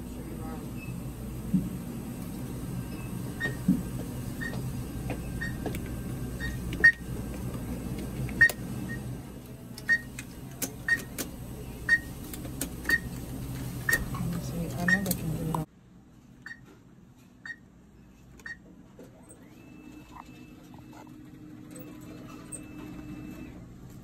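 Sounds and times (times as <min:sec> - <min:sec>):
atm beeping: 0:01.9 - 0:15.7.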